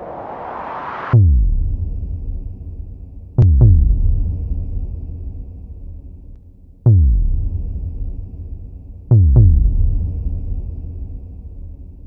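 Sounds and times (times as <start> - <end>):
rising whoosh: 0.0 - 1.2.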